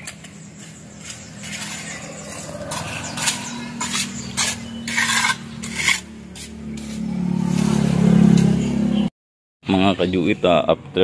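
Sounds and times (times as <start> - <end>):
trowel scraping wet cement: 0.0 - 7.8.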